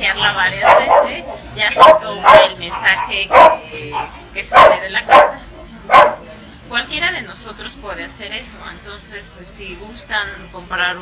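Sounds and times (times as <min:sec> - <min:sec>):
dog barking: 0:00.6 - 0:06.2.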